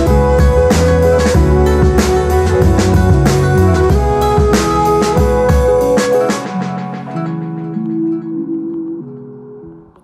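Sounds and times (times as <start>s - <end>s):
instrumental music with held notes: 0.0s - 10.0s.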